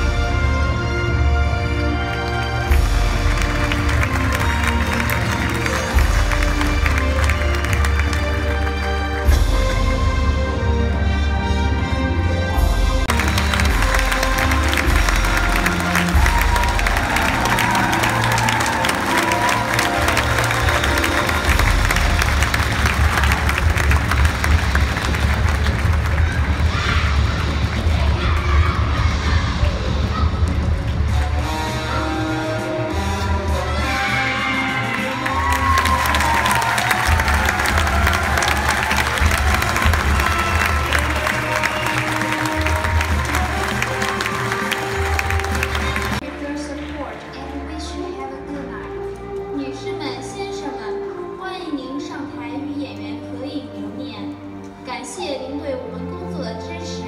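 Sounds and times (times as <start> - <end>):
audience clapping and cheering: 0.0 - 11.4, 12.6 - 47.7
loud music: 0.0 - 48.8.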